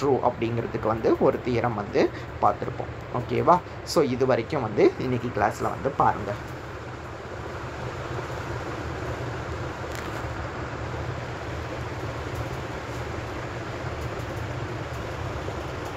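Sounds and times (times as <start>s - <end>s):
low rumble with hiss: 0.0s - 15.9s.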